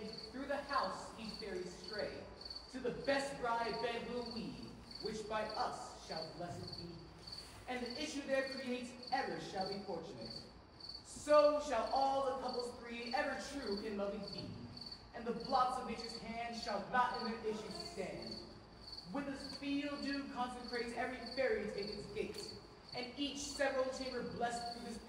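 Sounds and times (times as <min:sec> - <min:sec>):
crickets chirping: 0:00.0 - 0:25.0.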